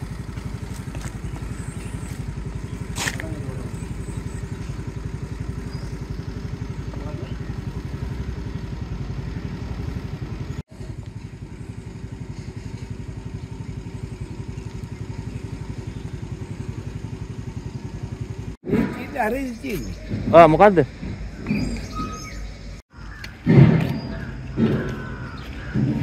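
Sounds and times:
engine idling: 0.0 - 26.0.

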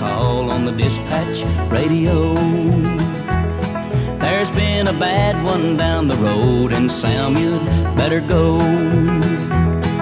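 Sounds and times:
bass line: 0.0 - 10.0
country band instrumental: 0.0 - 10.0
guitar melody bending: 0.0 - 10.0.

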